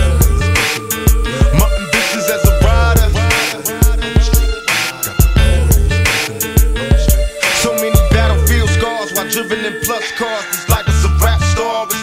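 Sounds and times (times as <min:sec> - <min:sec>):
deep bass line: 0:00.0 - 0:08.9, 0:10.7 - 0:11.6
rapping over a beat: 0:00.0 - 0:12.0.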